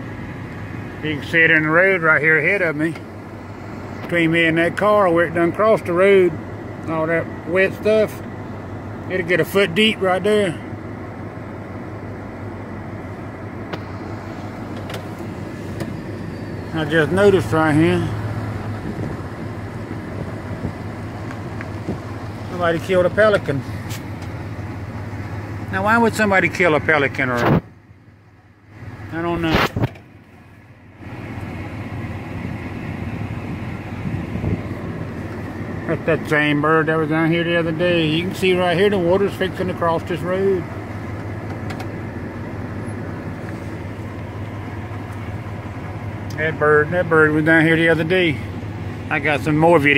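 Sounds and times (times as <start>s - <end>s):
tyres on dirt road: 0.0s - 49.9s
vehicle engine running: 0.0s - 49.9s.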